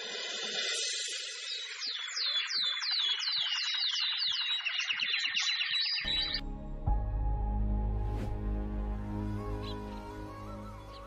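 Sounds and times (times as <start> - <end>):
birds chattering and whistling: 0.5 - 6.4
low background music: 6.1 - 11.0.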